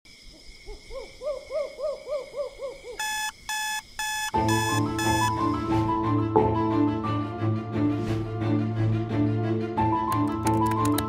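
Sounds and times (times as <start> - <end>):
owl hooting: 0.6 - 4.3
electronic alarm beeping: 3.0 - 5.6.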